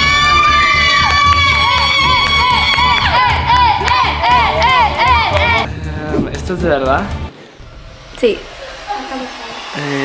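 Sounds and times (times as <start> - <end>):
girls screaming with excitement: 0.0 - 4.6.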